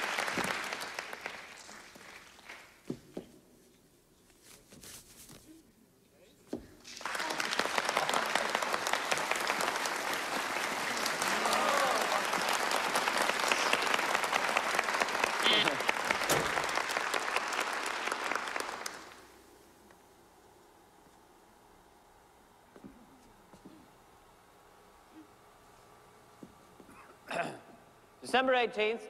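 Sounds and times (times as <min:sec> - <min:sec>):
audience applauding: 0:00.0 - 0:02.8, 0:06.8 - 0:19.3.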